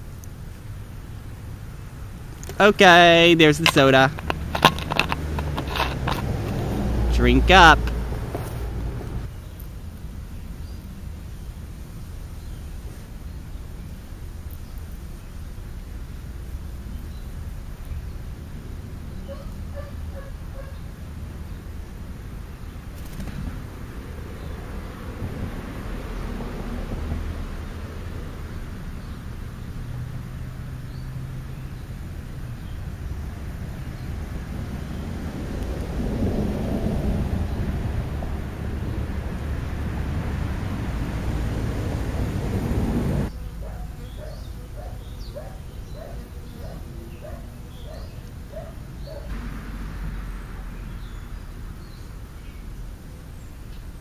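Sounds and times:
low outdoor rumble: 0.0s - 54.0s.

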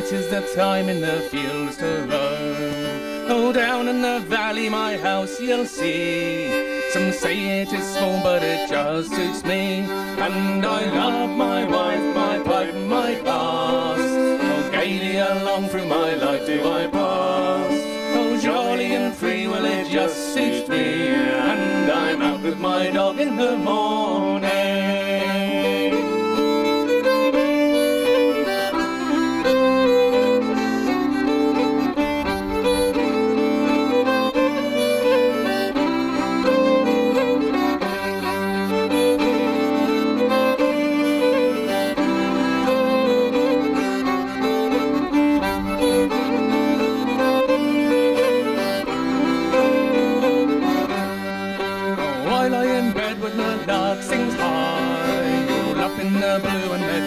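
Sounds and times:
button accordion chords: 0.0s - 57.0s
fiddle playing a tune: 0.0s - 57.0s.

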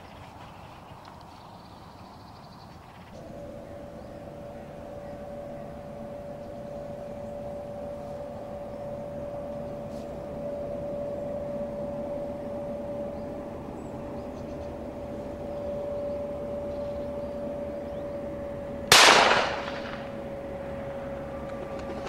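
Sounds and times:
steady faint hum: 0.0s - 22.0s
shotgun shot: 18.9s - 20.2s.

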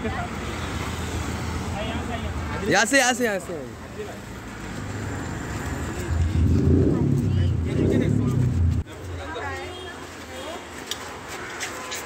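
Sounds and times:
low rumble of traffic: 0.0s - 11.4s
crowd voices: 5.3s - 10.9s.

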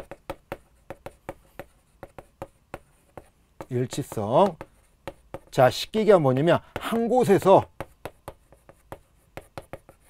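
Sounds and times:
chalk tapping and scratching: 0.0s - 10.0s.

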